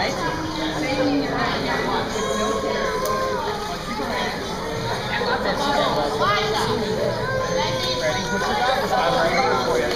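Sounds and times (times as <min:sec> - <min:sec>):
children chattering and calling out: 0:00.0 - 0:09.9.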